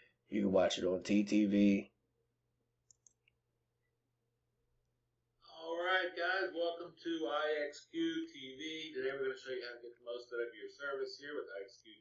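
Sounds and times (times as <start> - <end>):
man talking: 0.3 - 1.9, 5.4 - 12.0
faint low hum: 0.3 - 12.0
computer mouse clicks: 2.8 - 3.4.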